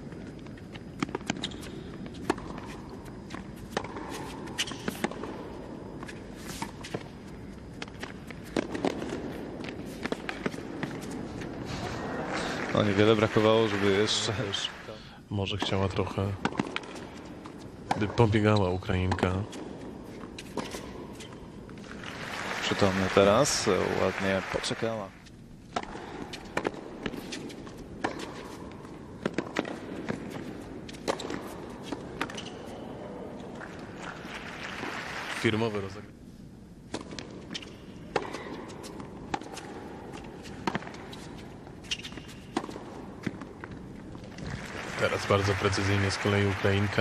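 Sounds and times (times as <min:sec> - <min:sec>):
shoes squeaking on court: 0:00.1 - 0:11.8, 0:16.5 - 0:22.0, 0:26.2 - 0:34.4, 0:37.0 - 0:44.2
arena background hush: 0:01.7 - 0:47.0
racket hitting ball: 0:03.7 - 0:05.5, 0:07.8 - 0:11.2, 0:16.4 - 0:17.1, 0:25.7 - 0:32.7, 0:36.9 - 0:44.0.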